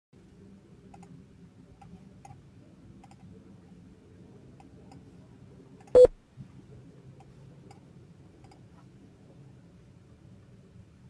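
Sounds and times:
faint background hum: 0.2s - 11.0s.

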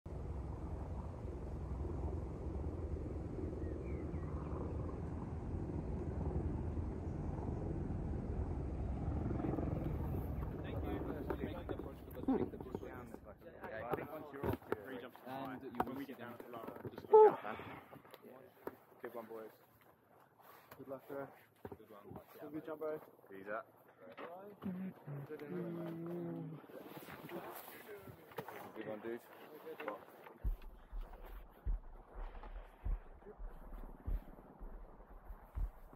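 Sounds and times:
low rumble: 0.1s - 13.3s
people talking: 9.4s - 19.6s, 20.8s - 30.6s.

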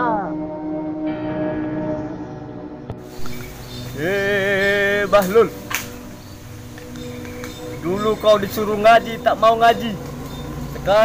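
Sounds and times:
sharp click: 5.2s - 6.0s.

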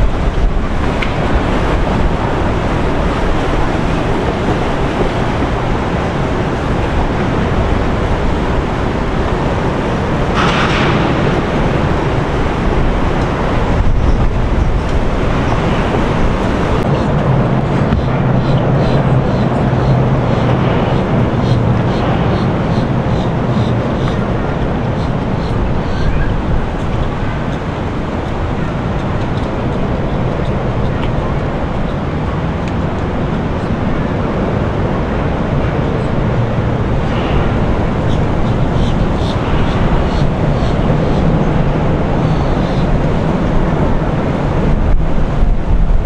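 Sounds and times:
boat engines running: 0.0s - 46.0s
wind on microphone: 0.0s - 46.0s.

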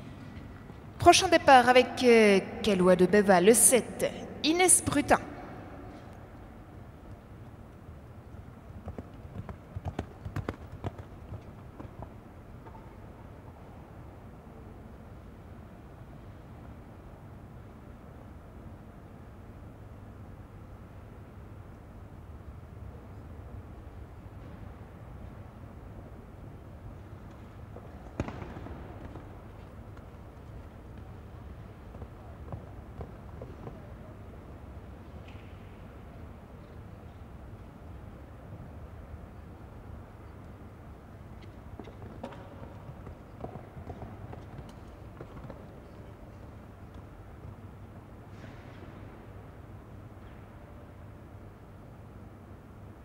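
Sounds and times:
indoor arena rumble: 0.0s - 53.0s
horse hoofbeats on sand: 8.8s - 12.2s.

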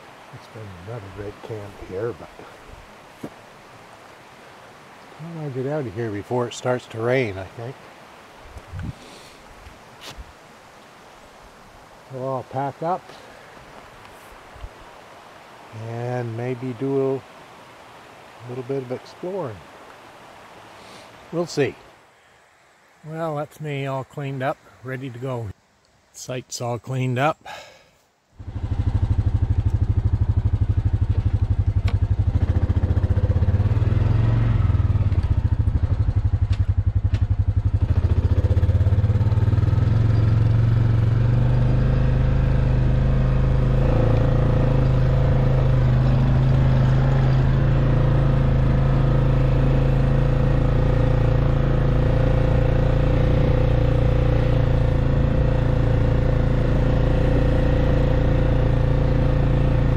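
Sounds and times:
atv engine running: 28.4s - 59.9s.

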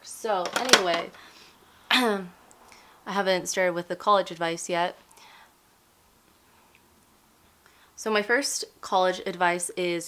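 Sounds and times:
faint breathy sound: 5.1s - 5.6s.

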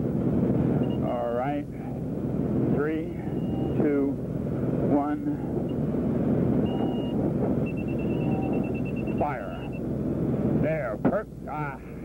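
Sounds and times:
light aircraft engine droning: 0.0s - 12.0s
thin high tone: 6.6s - 9.8s.

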